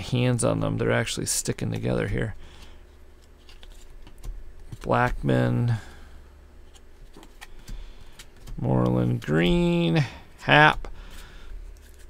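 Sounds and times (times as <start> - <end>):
low steady hum: 0.0 - 12.0
trading cards flipped by hand: 2.6 - 4.9, 6.6 - 9.3, 11.1 - 12.0.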